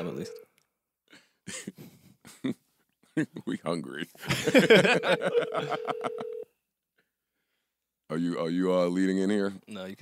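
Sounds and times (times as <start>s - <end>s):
men suppressing laughs: 4.2s - 6.4s.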